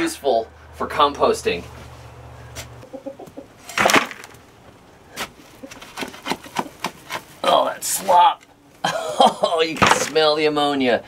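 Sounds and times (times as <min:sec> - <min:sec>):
shovel scraping: 0:03.6 - 0:04.4.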